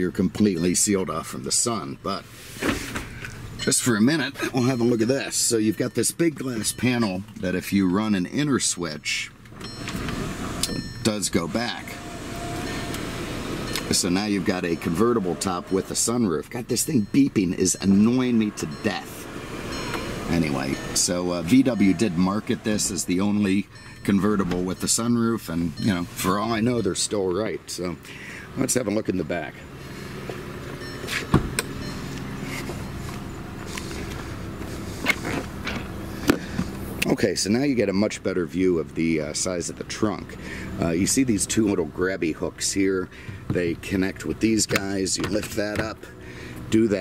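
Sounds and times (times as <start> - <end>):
car engine idling: 0.0 - 47.0.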